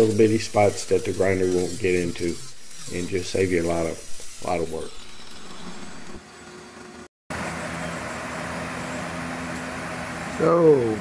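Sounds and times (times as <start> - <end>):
angle grinder grinding fiberglass: 0.0 - 7.1.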